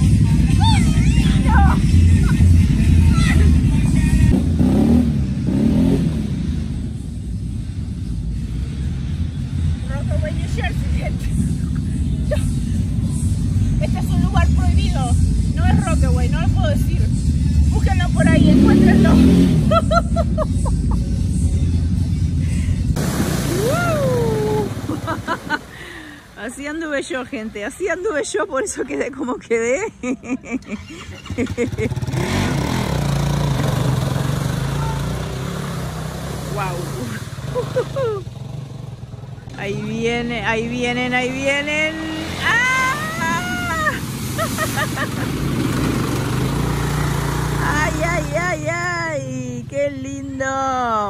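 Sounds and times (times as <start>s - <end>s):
voices: 0.0s - 4.5s, 9.6s - 22.8s, 23.5s - 33.0s, 33.7s - 38.6s, 39.2s - 46.8s, 47.4s - 51.0s
motorcycle engines revving: 0.0s - 28.2s, 29.9s - 51.0s.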